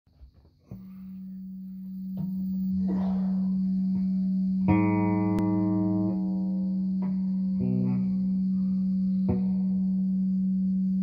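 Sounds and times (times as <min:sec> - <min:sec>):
electric guitar through effects: 0:00.6 - 0:11.0.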